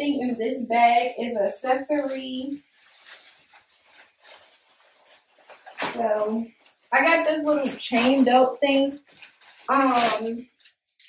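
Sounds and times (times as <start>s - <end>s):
plastic bag rustling: 0.8s - 10.8s.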